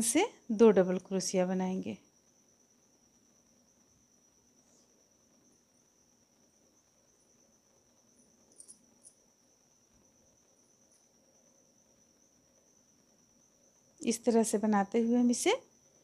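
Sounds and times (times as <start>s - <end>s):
faint high-pitched whine: 0.0s - 16.0s.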